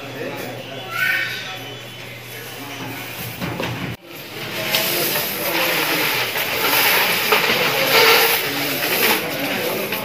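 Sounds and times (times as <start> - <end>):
faint voices murmuring: 0.0 - 10.0
coins and banknotes rustling: 4.2 - 10.0.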